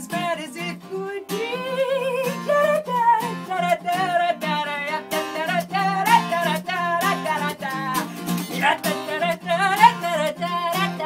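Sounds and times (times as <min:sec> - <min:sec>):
strummed acoustic guitar: 0:00.0 - 0:11.0
woman singing: 0:00.0 - 0:11.0.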